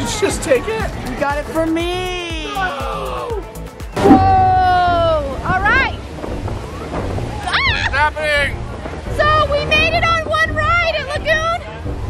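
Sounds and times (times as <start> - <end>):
wind buffeting microphone: 4.0 - 12.0.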